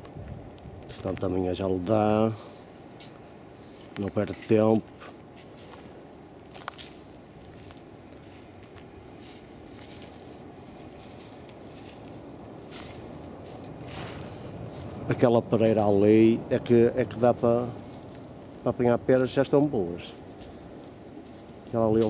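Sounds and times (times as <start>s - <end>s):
footsteps on dry soil: 0.0s - 22.0s
outdoor background noise: 0.0s - 22.0s.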